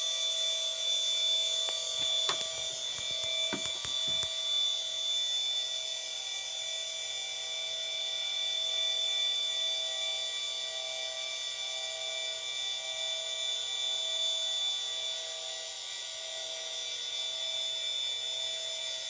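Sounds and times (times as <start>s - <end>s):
telescope mount motors whining: 0.0s - 18.8s.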